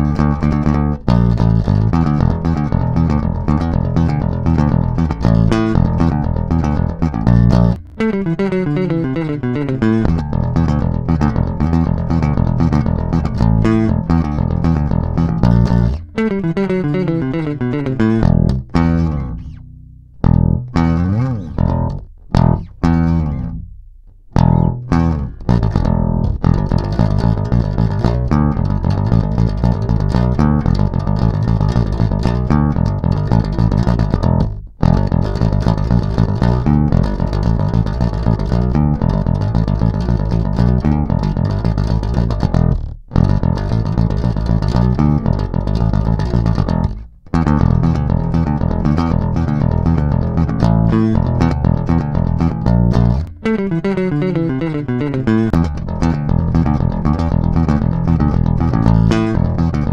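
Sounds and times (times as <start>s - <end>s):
electric bass guitar playing: 0.0s - 59.9s.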